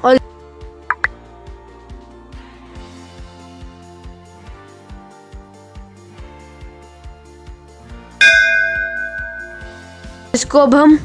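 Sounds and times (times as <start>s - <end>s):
soft background music with beat: 0.3s - 11.0s
bright notification bell chime: 8.2s - 10.1s.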